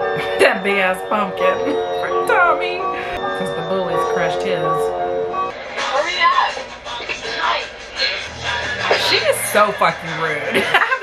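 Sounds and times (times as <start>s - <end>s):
background music: 0.0s - 11.0s
film voices: 5.7s - 11.0s.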